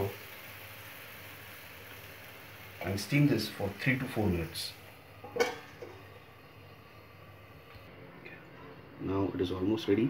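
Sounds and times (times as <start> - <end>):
oil bubbling and sizzling: 0.0 - 8.0.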